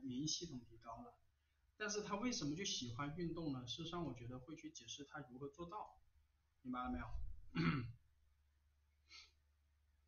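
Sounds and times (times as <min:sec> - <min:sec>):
man speaking: 0:00.0 - 0:01.2, 0:01.8 - 0:06.0, 0:06.6 - 0:07.3
man clearing throat: 0:07.5 - 0:08.0.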